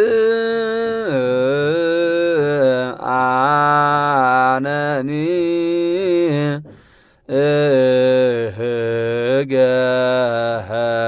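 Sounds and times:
person chanting a hymn: 0:00.0 - 0:06.7, 0:07.3 - 0:11.0.

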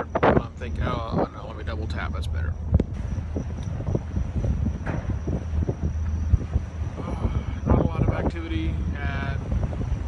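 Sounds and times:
faint high whine: 0:00.0 - 0:10.0
low steady rumble: 0:00.0 - 0:10.0
wind buffeting microphone: 0:00.0 - 0:10.0.

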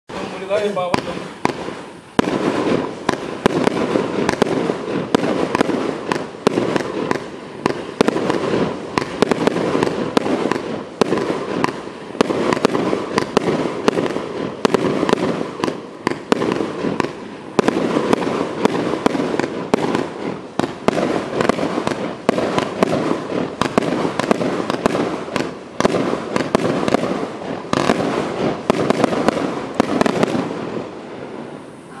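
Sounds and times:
firework cake firing: 0:00.1 - 0:32.0.

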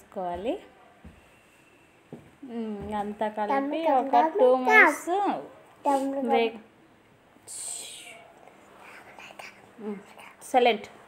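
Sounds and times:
soft vocal sound: 0:07.4 - 0:10.4
person whispering: 0:07.5 - 0:08.3.

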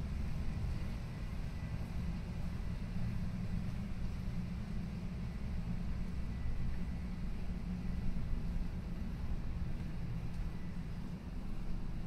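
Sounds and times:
city rumble: 0:00.0 - 0:12.0.

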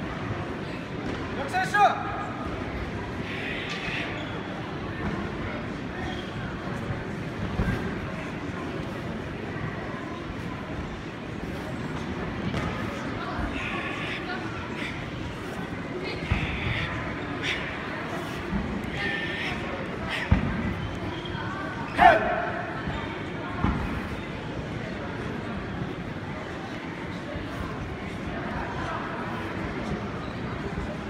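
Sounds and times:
echoing crowd chatter: 0:00.0 - 0:31.0.

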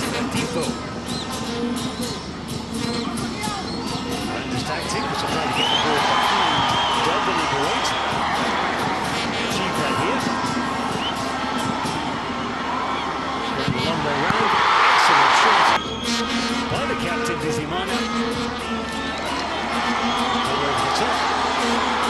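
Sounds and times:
stadium crowd shouting: 0:02.8 - 0:22.0.

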